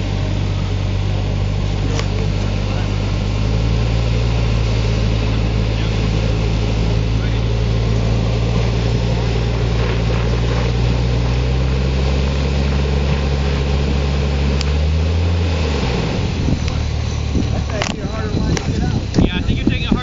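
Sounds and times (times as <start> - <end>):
suv engine running at low revs: 0.0 - 20.0.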